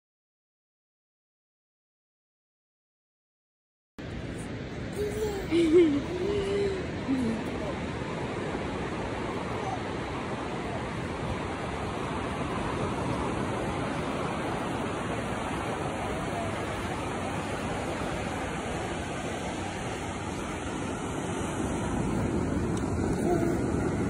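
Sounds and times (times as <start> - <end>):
ocean surf breaking on sand: 4.0 - 24.0.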